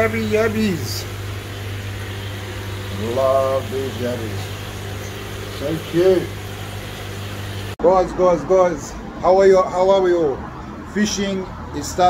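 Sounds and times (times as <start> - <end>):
even hiss: 0.0 - 7.8
low electrical hum: 0.0 - 7.8.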